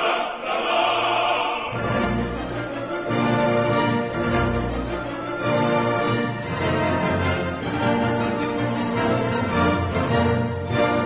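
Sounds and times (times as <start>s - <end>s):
orchestral music: 0.0s - 11.0s.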